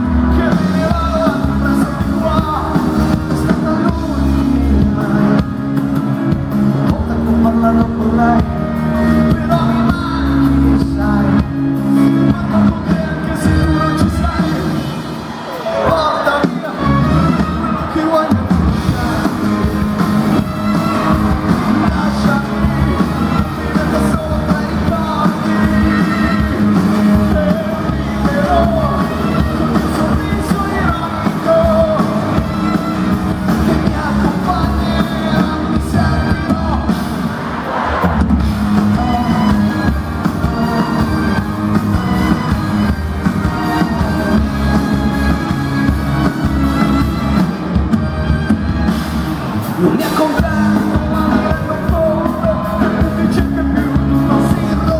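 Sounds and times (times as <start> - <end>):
man singing lead vocal: 0.0 - 47.2, 49.6 - 54.9
electric guitar: 0.0 - 54.9
live pop-rock band playing: 0.0 - 54.9.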